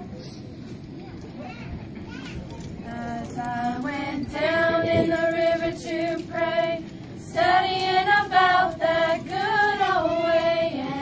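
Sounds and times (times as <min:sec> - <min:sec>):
girls singing in unison: 0:02.9 - 0:11.0.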